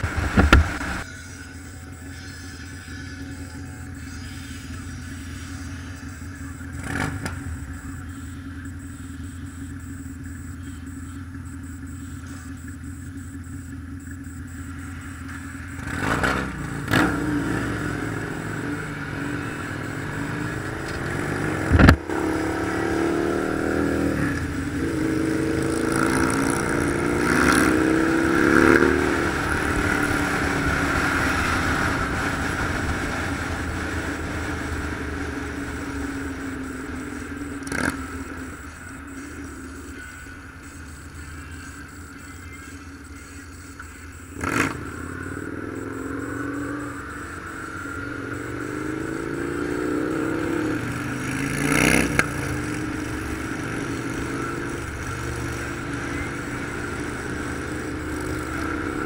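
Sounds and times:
motorcycle engine accelerating: 0:00.0 - 0:59.0.

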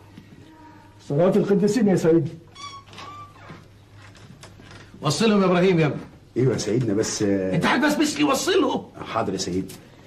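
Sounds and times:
high-pitched animal call: 0:02.5 - 0:03.5.

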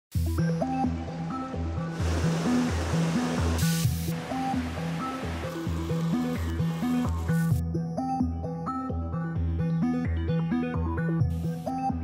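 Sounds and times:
background music with bass line: 0:00.1 - 0:12.0
mountain stream rushing: 0:01.9 - 0:07.5.

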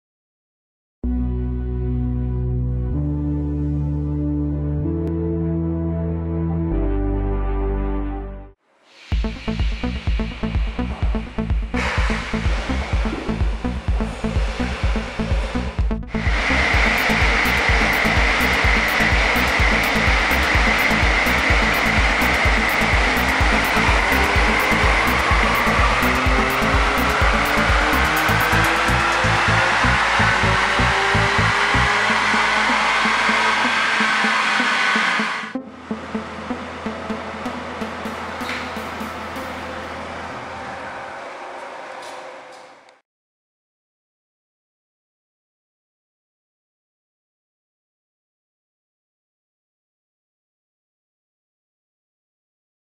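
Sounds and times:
electronic music beat: 0:09.2 - 0:40.2
car engine at full throttle: 0:16.1 - 0:41.4.

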